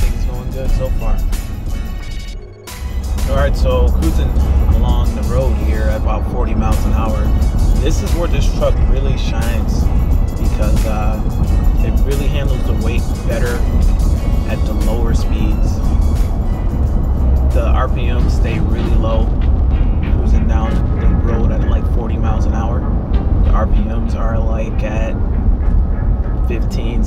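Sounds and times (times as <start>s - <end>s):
background music with sampled voice: 0.0s - 27.0s
road and engine drone: 0.0s - 27.0s.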